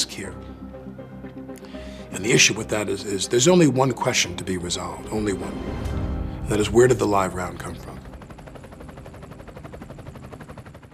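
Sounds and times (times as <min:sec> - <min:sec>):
helicopter rotor chop: 0:03.6 - 0:10.9.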